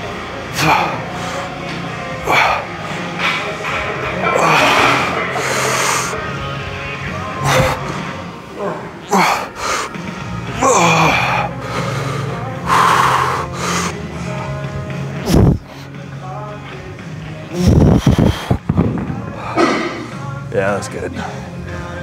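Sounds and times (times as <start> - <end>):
gym background music: 0.0 - 22.0.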